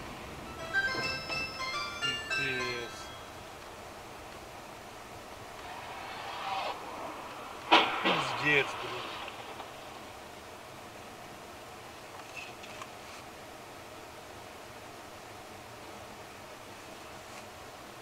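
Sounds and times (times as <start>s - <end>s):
car collision bang: 7.7s - 9.7s.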